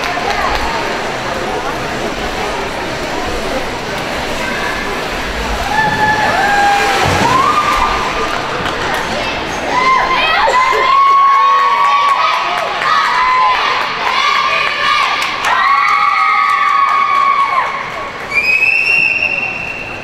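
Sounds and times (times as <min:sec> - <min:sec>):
spectators cheering: 0:05.4 - 0:19.8.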